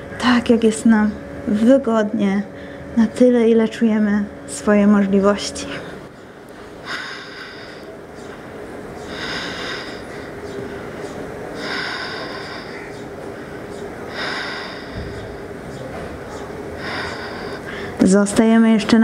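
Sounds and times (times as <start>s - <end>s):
woman breathing slowly: 2.5s - 3.0s, 5.7s - 15.7s, 16.7s - 18.0s.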